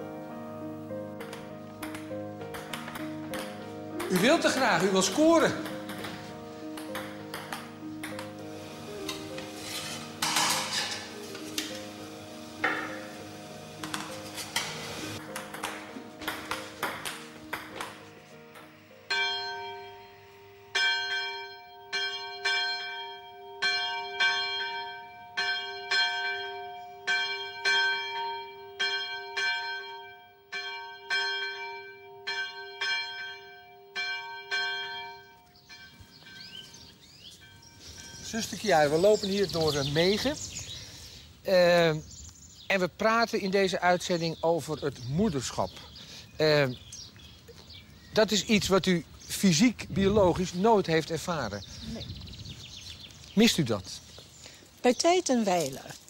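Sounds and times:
metal bowls and pans clinking: 9.0 - 11.8
bell ringing: 16.2 - 39.6.

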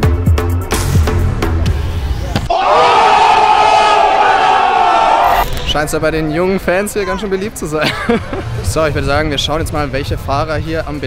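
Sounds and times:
crowd screaming: 2.5 - 7.3.

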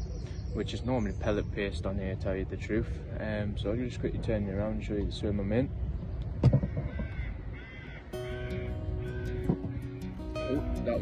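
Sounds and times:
bird harsh calls: 6.5 - 11.0
background music with held notes: 8.2 - 11.0.

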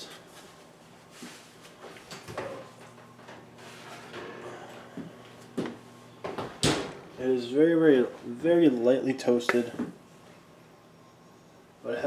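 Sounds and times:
low steady hum: 0.0 - 12.0
baking sheet scraping on rack: 3.6 - 4.6
oven door opening: 3.7 - 5.1.

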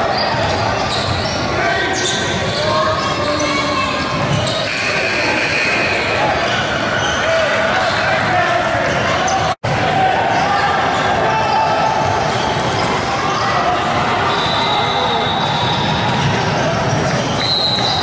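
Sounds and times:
voices in echoing gym: 0.0 - 18.0.

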